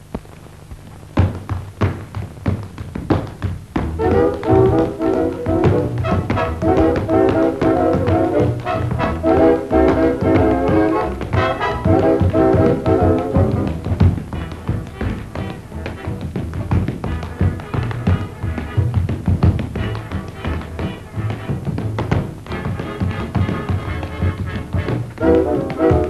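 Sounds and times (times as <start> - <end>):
sharp tapping beat: 0.0 - 26.0
dance band playing: 1.0 - 26.0
brass section held chords: 4.0 - 13.3, 25.2 - 26.0.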